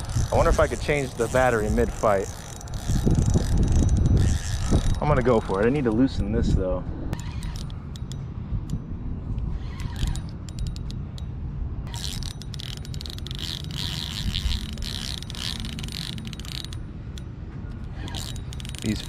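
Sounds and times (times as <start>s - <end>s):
fishing reel clicking: 0.0s - 5.6s, 7.2s - 8.8s, 9.5s - 11.3s, 11.9s - 19.0s
wind rumble on microphone: 0.0s - 19.0s.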